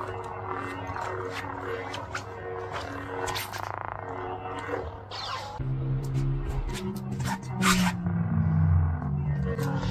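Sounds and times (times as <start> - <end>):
lightsaber hum: 0.0 - 9.9.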